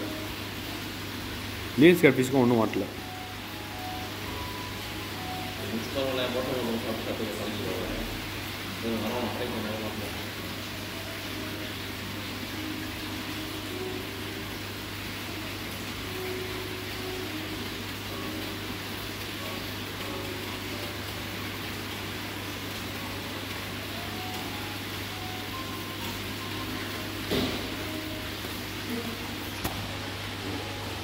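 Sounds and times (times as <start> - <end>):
aquarium air pump hum: 0.0 - 31.0.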